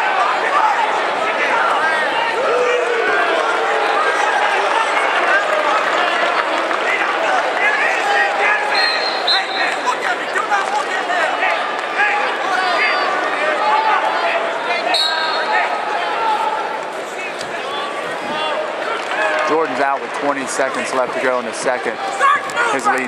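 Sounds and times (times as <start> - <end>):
arena crowd voices: 0.0 - 23.0.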